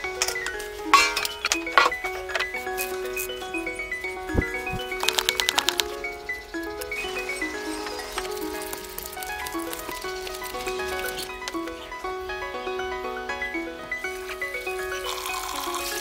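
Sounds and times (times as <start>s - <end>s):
gentle instrumental music: 0.0s - 16.0s.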